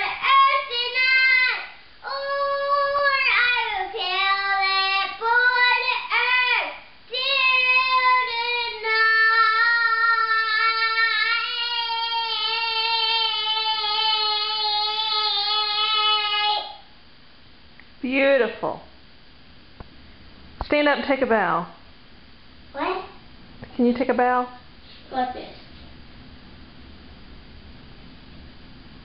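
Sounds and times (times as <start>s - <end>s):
boy singing: 0.0s - 16.8s.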